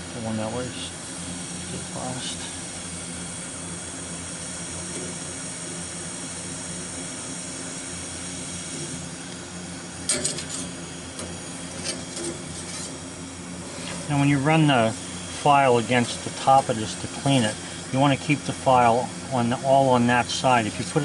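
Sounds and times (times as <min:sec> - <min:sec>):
steady background hum: 0:00.0 - 0:21.0.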